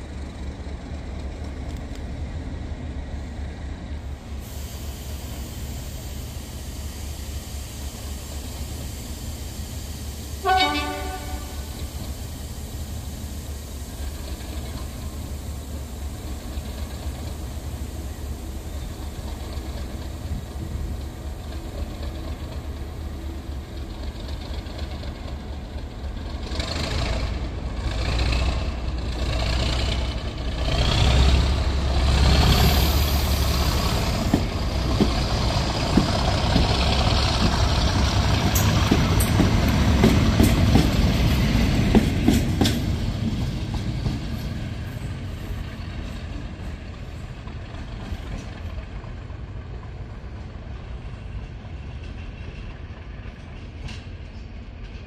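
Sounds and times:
diesel locomotive engine running: 0.0s - 55.0s.

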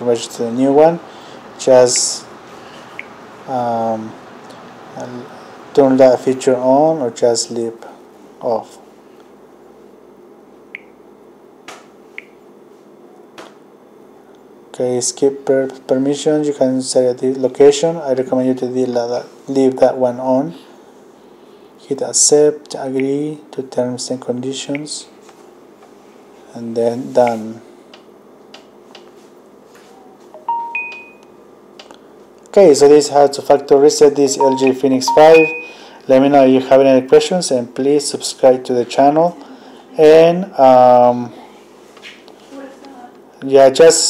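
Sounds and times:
phone chime rising tones: 30.4s - 31.2s, 34.4s - 35.9s.

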